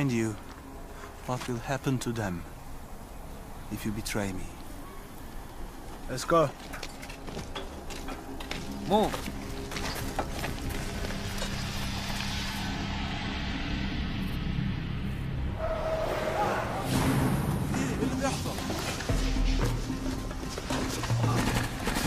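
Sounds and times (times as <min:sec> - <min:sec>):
movement noises: 0:04.6 - 0:12.6, 0:15.9 - 0:22.0
background score music: 0:04.6 - 0:22.0
indistinct voices: 0:15.6 - 0:19.4.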